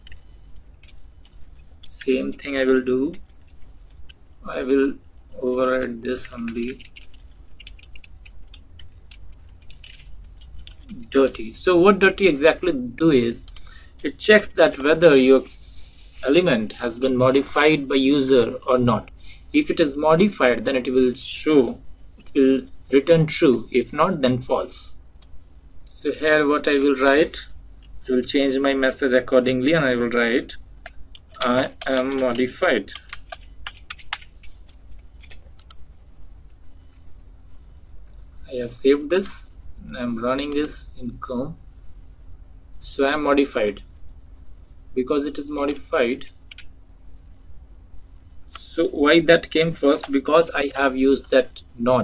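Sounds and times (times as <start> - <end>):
low steady hum: 0.0 - 52.0
keyboard keys tapping: 5.8 - 11.4, 30.8 - 35.8.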